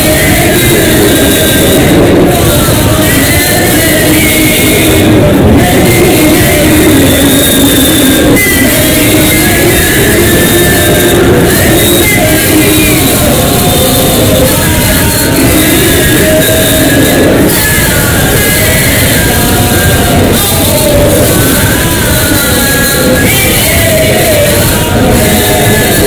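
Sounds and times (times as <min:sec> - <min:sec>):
boys singing a hymn in unison: 0:00.0 - 0:26.0.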